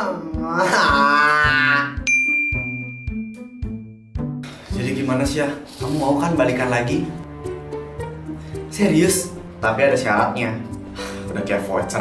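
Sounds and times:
background music with soft beat: 0.0 - 12.0
bright ding: 2.1 - 4.1.

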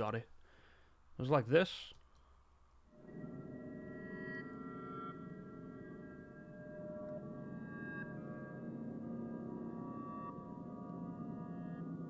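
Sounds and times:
cinematic drone: 3.0 - 12.0.

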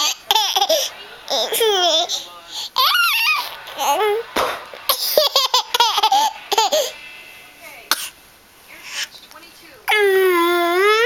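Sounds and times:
toddler laughing: 0.0 - 2.2, 2.8 - 4.2, 4.9 - 7.0.

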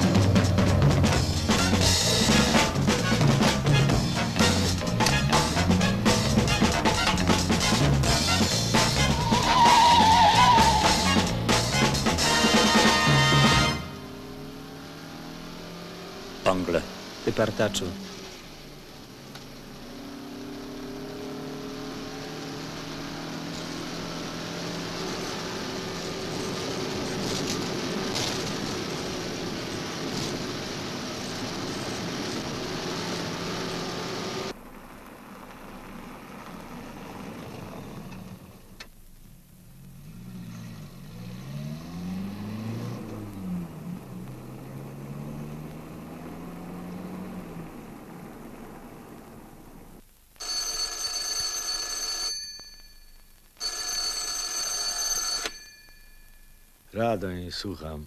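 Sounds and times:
steady noise: 0.0 - 20.1
telephone ringing: 50.4 - 56.8.

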